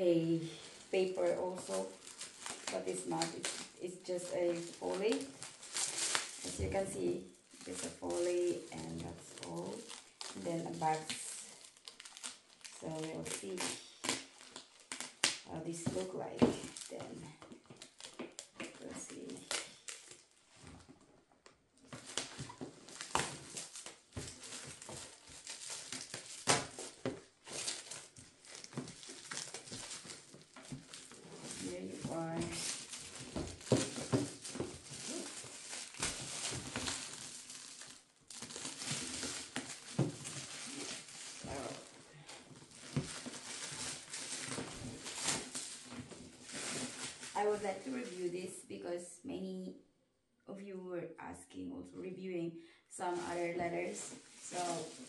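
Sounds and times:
plastic film crinkling and tearing: 0.1s - 20.6s, 21.8s - 48.3s, 53.0s - 55.0s.

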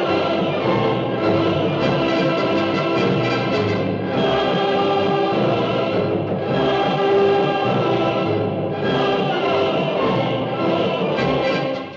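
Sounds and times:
choir singing held chords: 0.0s - 11.9s
orchestral music: 0.0s - 11.9s.

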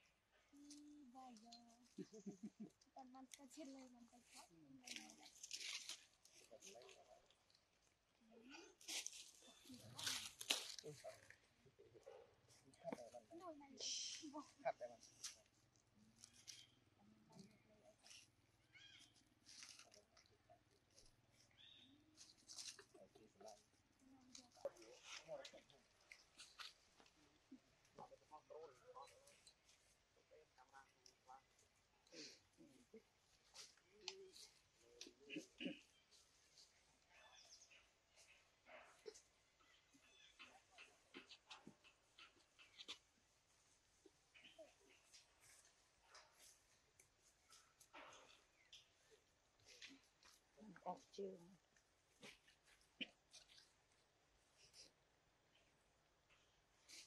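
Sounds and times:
dry leaves rustling: 4.8s - 7.1s, 8.8s - 11.4s, 18.0s - 20.2s, 20.9s - 23.6s.

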